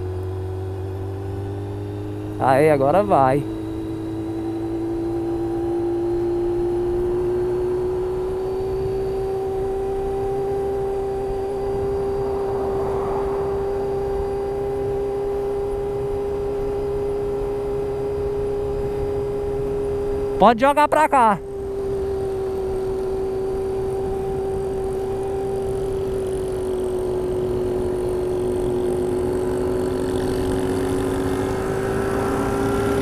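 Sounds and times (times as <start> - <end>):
motorcycle engine running: 0.0 - 33.0
road noise: 0.0 - 33.0
wind noise: 10.1 - 20.4.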